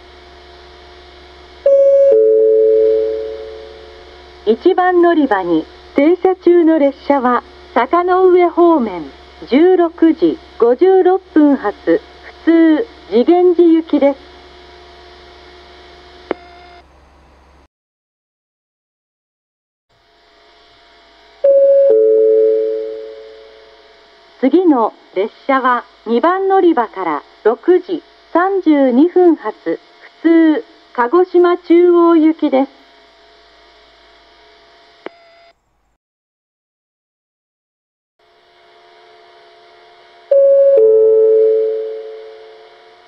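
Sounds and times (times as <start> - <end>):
faint steady hum: 0.0 - 17.7, 20.0 - 35.9, 38.3 - 43.0
two-note pa chime: 40.3 - 42.6.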